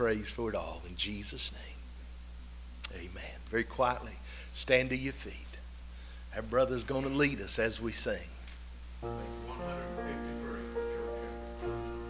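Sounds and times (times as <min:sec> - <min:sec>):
piano playing slow hymn chords: 0:09.0 - 0:12.0.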